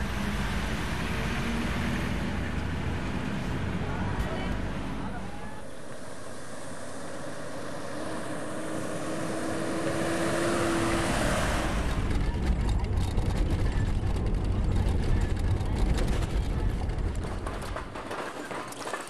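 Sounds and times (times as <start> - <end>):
vehicle approaching on gravel: 1.2 - 19.0
cabin rumble and rattling: 11.6 - 19.0.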